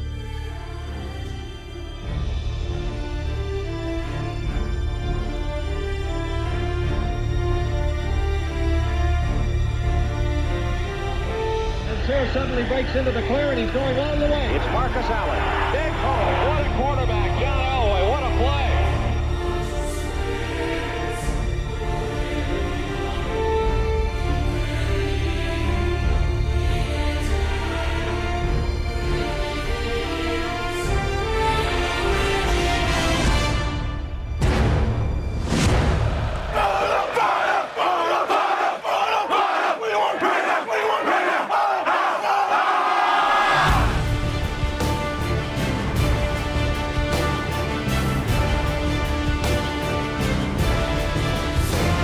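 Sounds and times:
music: 0:00.0 - 0:52.0
excited man's voice: 0:12.0 - 0:19.2
group war chant shouted: 0:14.5 - 0:17.0, 0:36.1 - 0:44.0.

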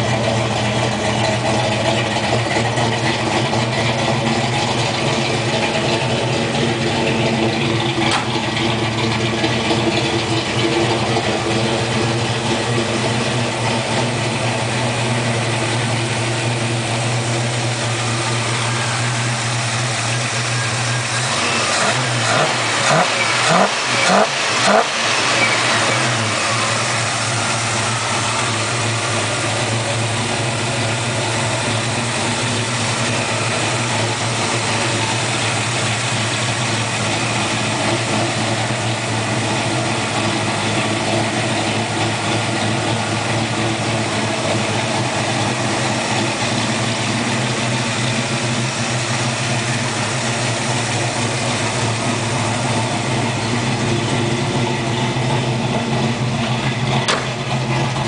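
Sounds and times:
car engine idling and revving: 0:00.0 - 0:58.0.

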